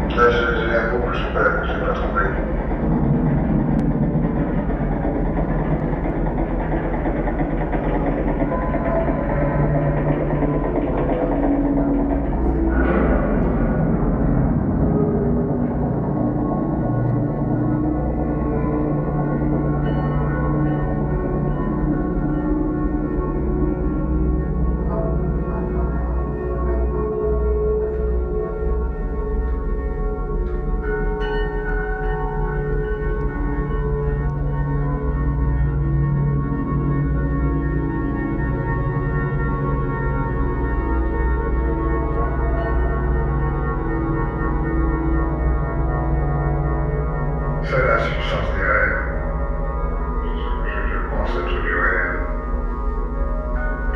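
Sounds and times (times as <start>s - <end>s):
low electronic drone: 0.0s - 53.9s.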